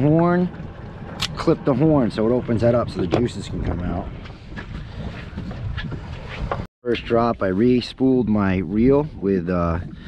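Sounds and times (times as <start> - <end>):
water noise: 0.0 - 10.0
wind rumble on microphone: 0.0 - 10.0.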